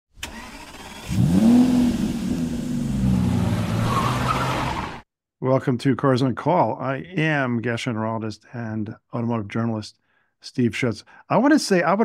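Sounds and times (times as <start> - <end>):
car engine starting and revving: 0.2 - 5.0.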